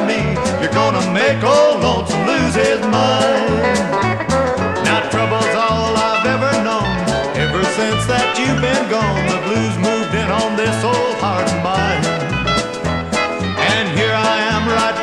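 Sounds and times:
bass line: 0.0s - 15.0s
steady drums: 0.0s - 15.0s.

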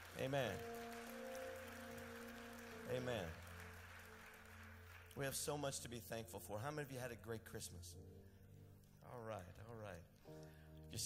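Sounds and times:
faint scattered clapping: 0.0s - 5.4s.

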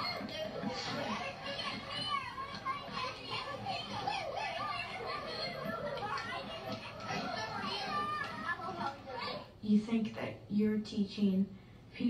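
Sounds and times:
children chattering over loudspeakers: 0.0s - 10.2s.

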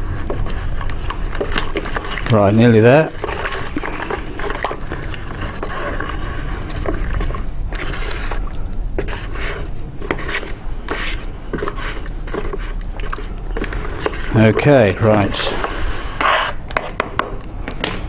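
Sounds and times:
spatula scraping plastic bucket: 0.0s - 17.1s.

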